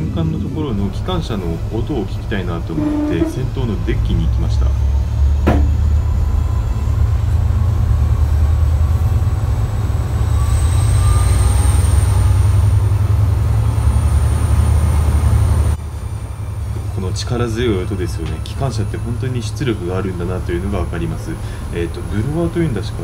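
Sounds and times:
diesel locomotive engine rumble: 0:00.0 - 0:23.0
single knock: 0:05.4 - 0:05.8.

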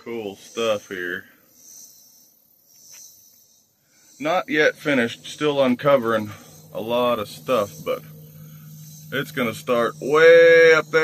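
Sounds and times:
faint insect buzzing: 0:00.0 - 0:11.0.

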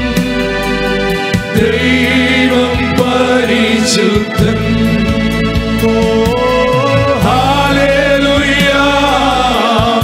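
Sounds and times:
sustained low instrumental notes: 0:00.0 - 0:09.7
male choir singing: 0:01.5 - 0:10.0.

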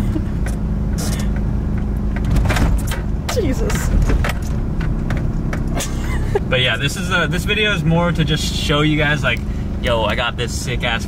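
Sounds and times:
diesel engine drone inside cabin: 0:00.0 - 0:11.0.

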